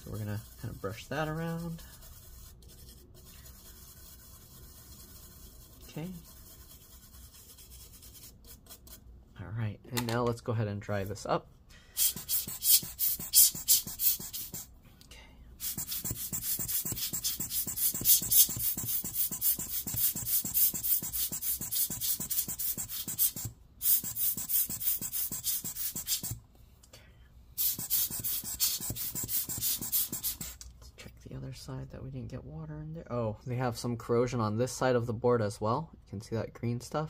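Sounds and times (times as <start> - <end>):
scratchy scrubbing on circuit board: 0.0 - 9.0, 12.0 - 14.7, 15.6 - 26.4, 27.6 - 30.6.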